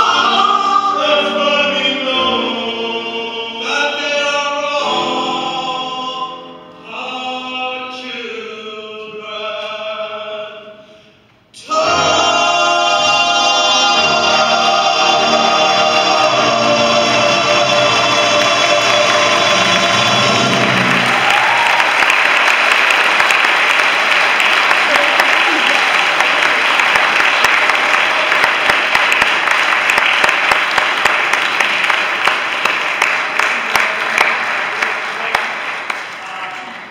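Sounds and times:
choir and string orchestra chord: 11.6 - 21.2
audience applause: 18.3 - 36.9.

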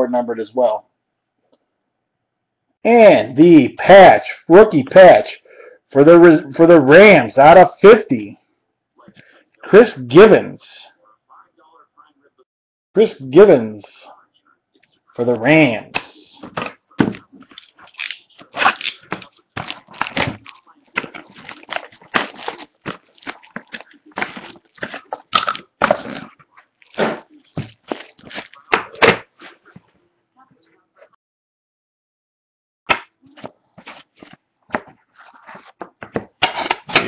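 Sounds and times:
cards and packaging rustling: 14.8 - 30.0, 33.0 - 37.0.

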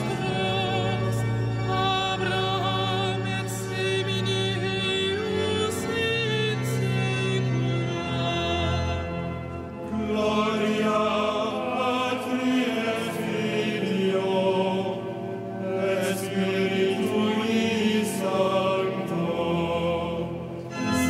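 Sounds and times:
congregation and cantor chanting: 0.0 - 9.1, 9.8 - 21.0.

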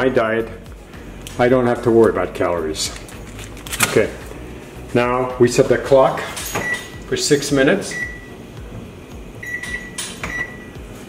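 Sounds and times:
kitchen timer beeping: 7.8 - 8.3, 9.4 - 10.8.

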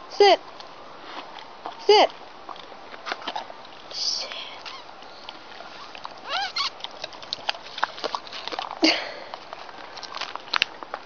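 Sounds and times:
dog whining: 4.6 - 6.9.

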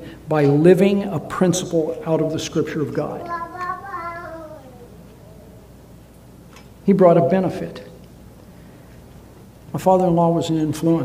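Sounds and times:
child's high wavering voice: 3.2 - 5.6.

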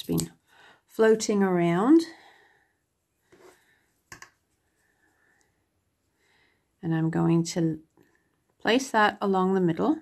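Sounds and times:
soft rustle: 2.8 - 6.5.

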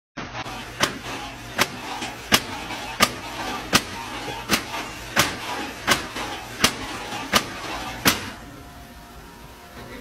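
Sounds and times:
sharp bangs at a door: 0.8 - 8.4.

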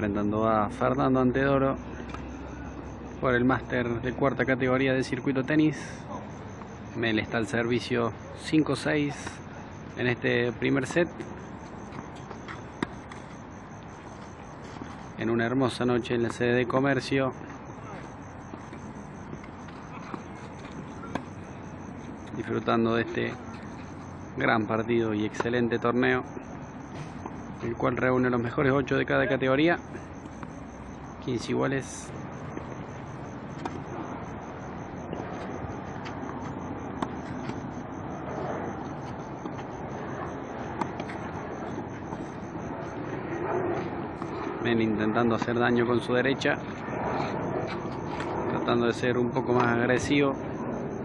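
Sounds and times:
outdoor background noise: 0.0 - 51.0.

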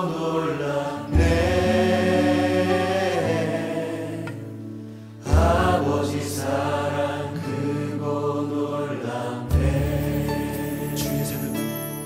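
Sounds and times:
singers singing worship song: 0.0 - 11.9
keyboard: 0.0 - 12.0
bass: 0.7 - 8.0, 9.2 - 12.0.

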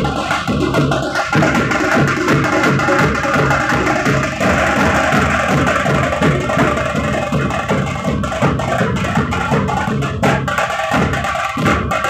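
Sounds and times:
street band drums beaten with sticks: 0.0 - 12.0.

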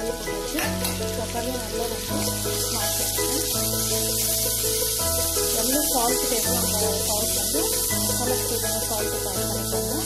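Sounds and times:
background music: 0.0 - 10.0
food sizzling in a pan: 0.0 - 10.0.

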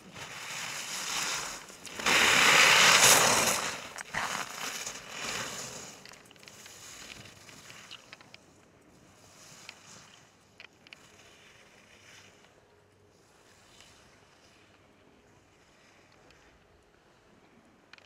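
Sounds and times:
skis scraping on snow: 0.0 - 8.2, 9.0 - 10.4, 11.0 - 12.6.

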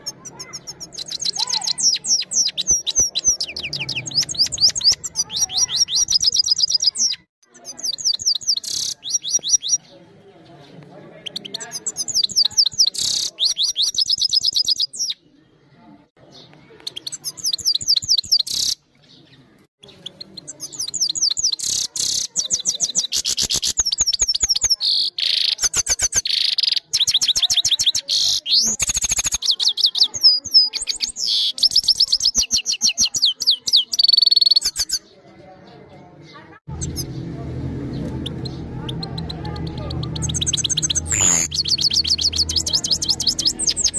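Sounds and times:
finch twittering song: 0.0 - 10.0, 11.2 - 15.2, 16.2 - 35.1, 36.7 - 43.9
low steady hum: 36.7 - 43.6.

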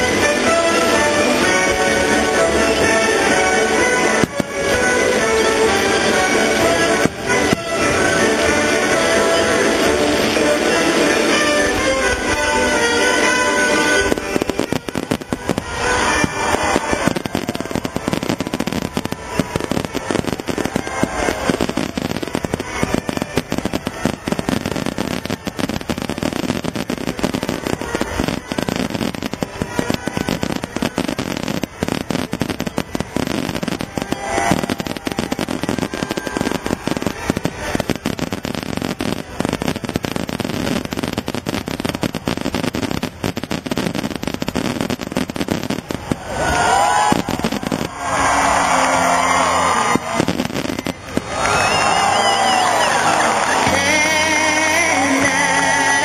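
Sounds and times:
fireworks bursting and crackling: 0.0 - 56.0
people cheering and whistling: 0.0 - 56.0.

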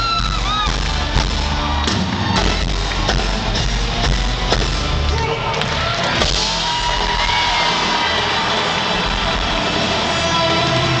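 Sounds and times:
crowd cheering: 0.0 - 11.0
live concert music: 0.0 - 11.0.

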